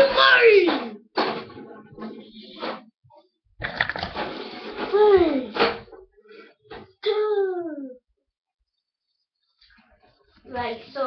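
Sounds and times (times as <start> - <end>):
noise: 1.2 - 7.0.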